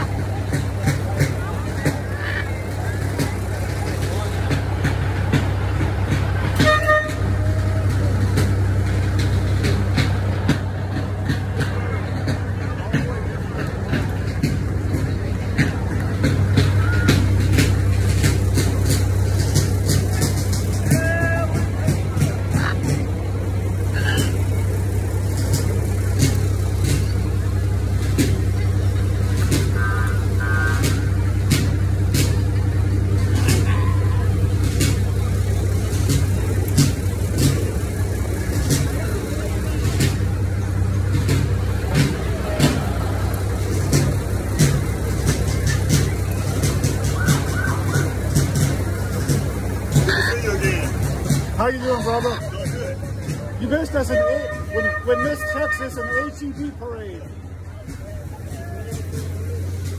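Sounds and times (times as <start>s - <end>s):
truck engine drone: 0.0s - 59.9s.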